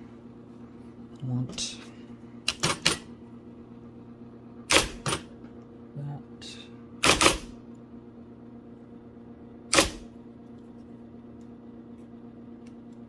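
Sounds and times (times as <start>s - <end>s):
typewriter motor hum: 2.4s - 3.1s, 4.6s - 5.3s, 7.0s - 7.6s, 9.7s - 10.2s
electric typewriter clacking: 7.0s - 7.5s, 9.7s - 10.0s.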